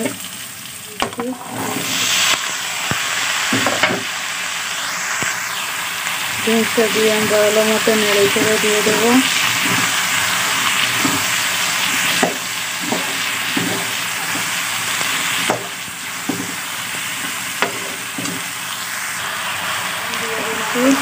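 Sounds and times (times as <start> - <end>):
vegetables sizzling in hot oil: 0.0 - 21.0.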